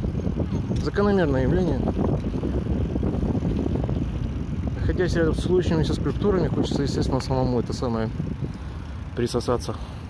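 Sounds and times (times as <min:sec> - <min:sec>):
bicycle tyres rolling on paving: 0:00.0 - 0:10.0
wind buffeting microphone: 0:00.0 - 0:10.0.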